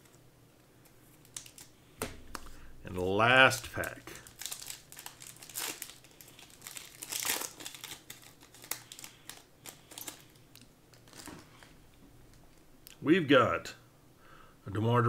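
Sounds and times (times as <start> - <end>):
wrapper crinkling: 1.1 - 1.8, 3.4 - 11.8
foil pack tearing: 3.7 - 10.4.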